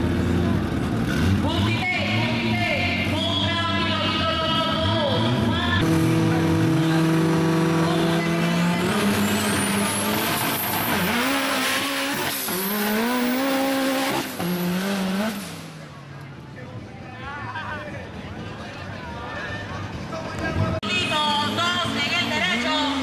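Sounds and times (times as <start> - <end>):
car engine revving: 0.0 - 16.4.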